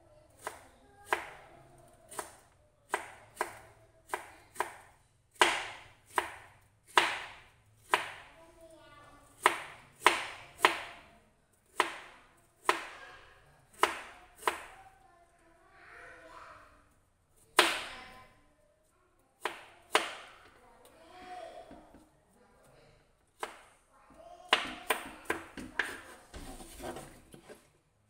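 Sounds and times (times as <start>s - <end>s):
knife chopping on plastic board: 2.1s - 8.3s, 9.4s - 11.1s, 11.7s - 13.0s, 13.8s - 14.8s, 19.4s - 20.4s, 23.4s - 23.7s, 24.5s - 27.6s.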